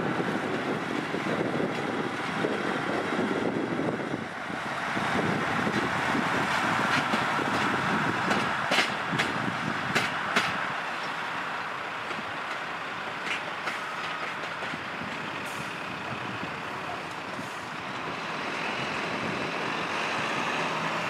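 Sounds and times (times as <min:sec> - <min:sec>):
locomotive rumbling: 0:00.0 - 0:21.0.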